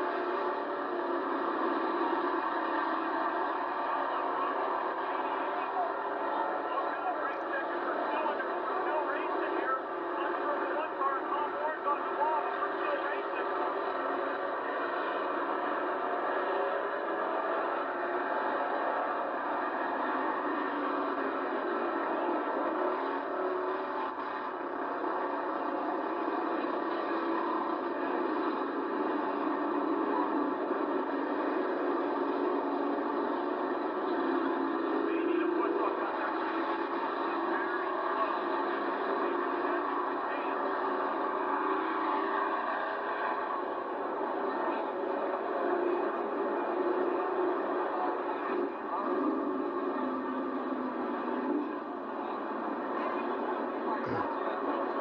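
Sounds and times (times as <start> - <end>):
race car engines droning: 0.0 - 55.0.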